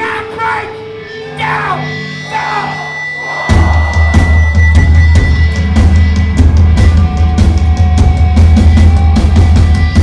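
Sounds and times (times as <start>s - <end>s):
punk band playing loud: 0.2s - 10.0s
crowd whooping and shouting: 1.4s - 10.0s
pounding drums: 3.3s - 10.0s.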